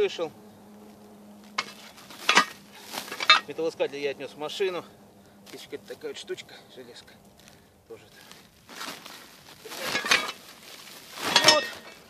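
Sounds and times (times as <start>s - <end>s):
sack rustling: 0.8s - 4.1s, 6.9s - 12.0s
scrap metal clinking: 1.5s - 3.8s, 8.8s - 12.0s.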